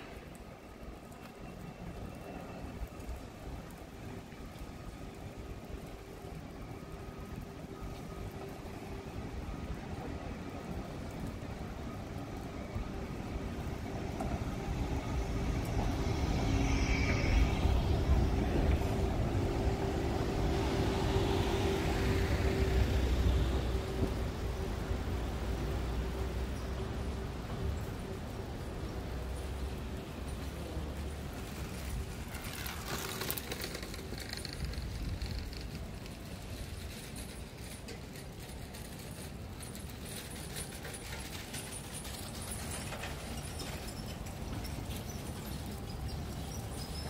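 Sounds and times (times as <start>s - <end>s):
bus passing by: 0.0s - 47.0s.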